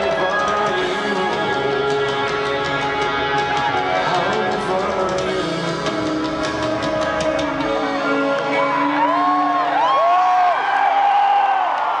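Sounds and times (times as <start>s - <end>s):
rock band playing live: 0.0s - 10.0s
drums: 0.0s - 11.7s.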